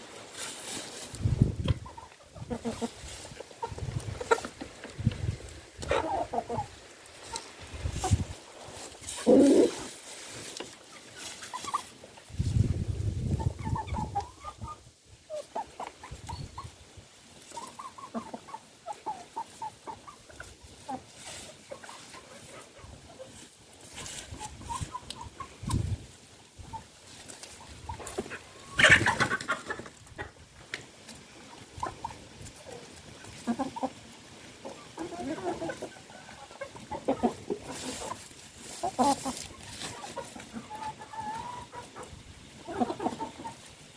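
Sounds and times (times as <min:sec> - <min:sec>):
chickens clucking: 0:00.0 - 0:43.9.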